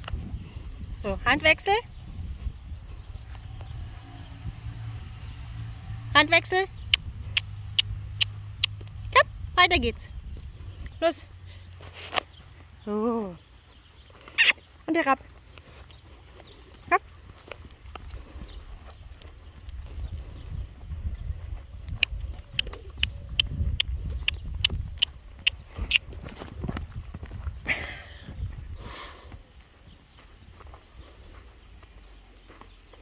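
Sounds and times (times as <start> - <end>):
hooves thudding on sand: 0.0 - 5.4, 10.2 - 33.0.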